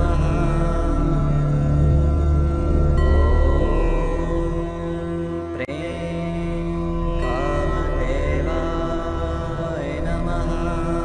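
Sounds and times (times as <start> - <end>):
meditation music drone: 0.0 - 11.0
person chanting: 0.0 - 11.0.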